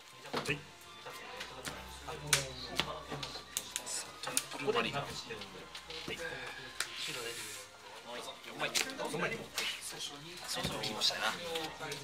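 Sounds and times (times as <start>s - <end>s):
playing cards clicking and tapping: 1.4s - 6.2s.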